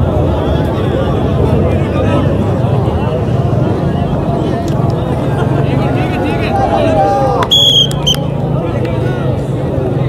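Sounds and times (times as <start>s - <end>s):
crowd hubbub: 0.0s - 10.0s
shrill whistle blasts: 7.5s - 8.2s.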